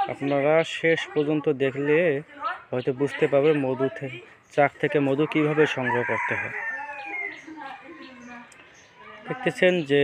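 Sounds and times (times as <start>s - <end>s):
rooster crowing: 5.4s - 7.4s.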